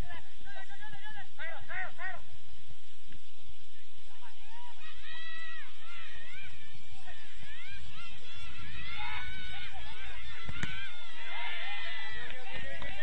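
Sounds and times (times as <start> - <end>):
voices shouting: 0.0 - 2.8, 3.6 - 13.0
steady background noise: 0.0 - 13.0.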